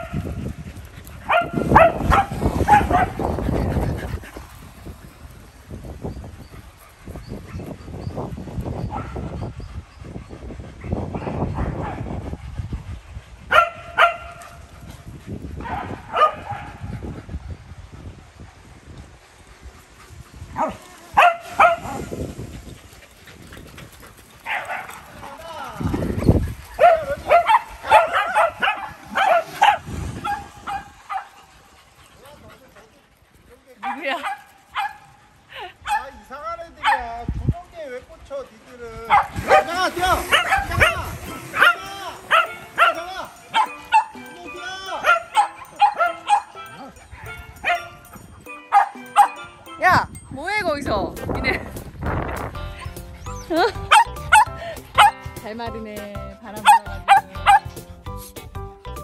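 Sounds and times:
small dogs barking and yipping: 0:00.0 - 0:09.9, 0:13.5 - 0:14.7, 0:15.5 - 0:17.1, 0:19.9 - 0:32.9, 0:33.8 - 0:37.1, 0:39.0 - 0:49.8, 0:52.4 - 0:58.0.

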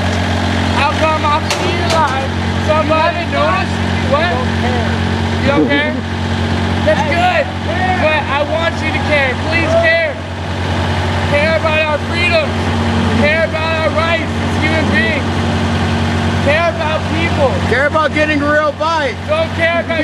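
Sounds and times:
idling motor hum: 0:00.0 - 0:20.0
people laughing: 0:12.9 - 0:15.3, 0:19.6 - 0:20.0.

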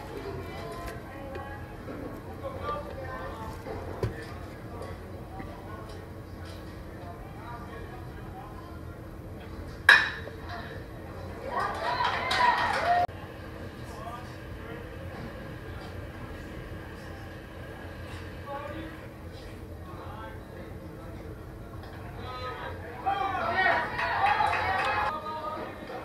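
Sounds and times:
faint crowd chatter: 0:00.0 - 0:26.0
spectators cheering and shouting: 0:11.5 - 0:13.1, 0:23.0 - 0:25.6.

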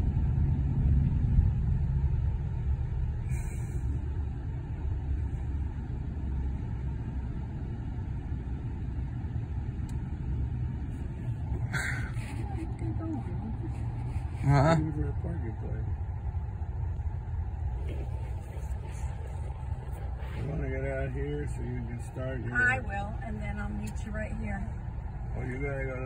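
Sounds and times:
car road and engine rumble: 0:00.0 - 0:26.0.

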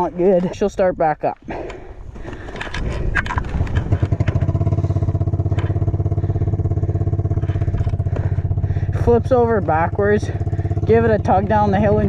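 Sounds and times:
quad engine starting and idling: 0:01.7 - 0:12.0.

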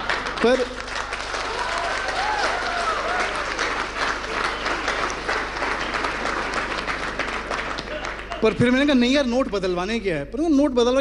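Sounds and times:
audience applauding: 0:00.0 - 0:09.0.

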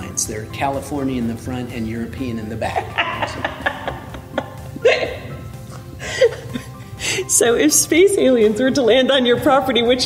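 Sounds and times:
background music with held notes: 0:00.0 - 0:10.0
person laughing: 0:02.8 - 0:06.8.

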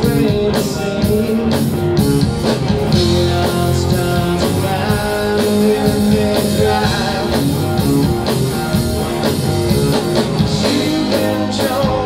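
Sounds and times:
bass: 0:00.0 - 0:12.0
drum kit: 0:00.0 - 0:12.0
electric guitars: 0:00.0 - 0:12.0.

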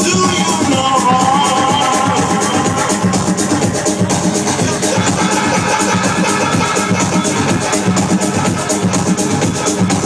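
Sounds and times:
loud techno over sound system: 0:00.0 - 0:10.0.

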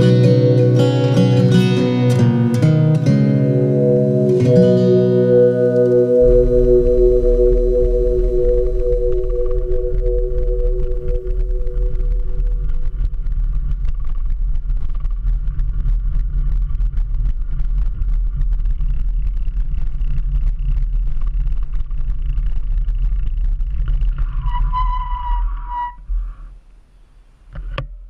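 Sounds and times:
bicycle brake squealing: 0:24.4 - 0:26.0.

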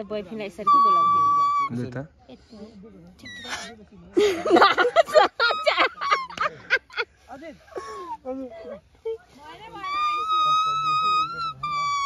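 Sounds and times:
leaf whistle squeak: 0:00.0 - 0:01.9, 0:03.2 - 0:03.8, 0:09.5 - 0:12.0
murmured talk: 0:00.0 - 0:12.0.

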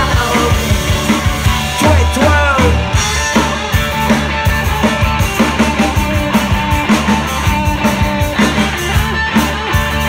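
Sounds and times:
bass guitar: 0:00.0 - 0:10.0
drum kit hits: 0:00.0 - 0:10.0
electric guitars: 0:00.0 - 0:10.0.

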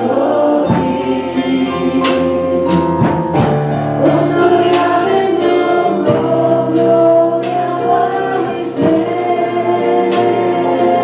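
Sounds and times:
women singing: 0:00.0 - 0:02.9, 0:04.0 - 0:11.0
acoustic guitar: 0:00.0 - 0:11.0
drum kit: 0:00.0 - 0:11.0.

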